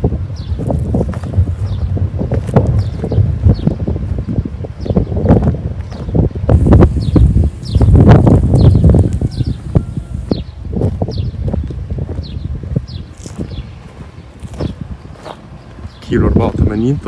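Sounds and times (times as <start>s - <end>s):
footsteps on sandy ground: 0.0s - 17.0s
wind on microphone: 0.0s - 17.0s
bird chirping: 6.9s - 11.4s, 12.2s - 13.8s, 14.6s - 16.9s.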